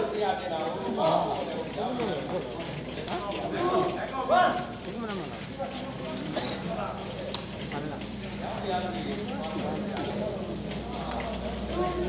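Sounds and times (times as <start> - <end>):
people talking and calling out: 0.0 - 12.0.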